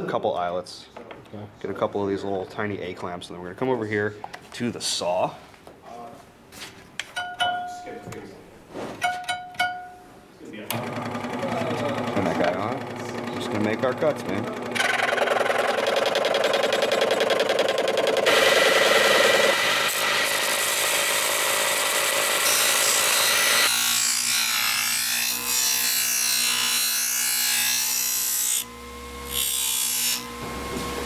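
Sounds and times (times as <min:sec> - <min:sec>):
buffing wheel running: 0:10.7 - 0:19.8
scroll saw cutting plastic: 0:10.7 - 0:27.1.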